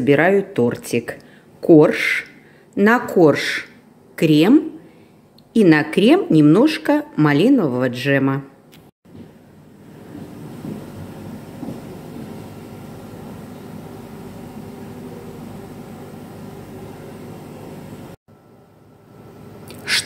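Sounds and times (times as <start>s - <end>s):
low mechanical hum: 8.6s - 20.0s.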